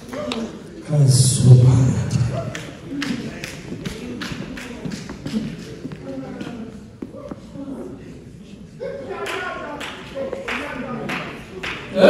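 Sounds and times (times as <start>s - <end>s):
person's voice: 0.8s - 2.6s
hand claps in steady rhythm: 2.5s - 6.6s, 9.2s - 12.0s.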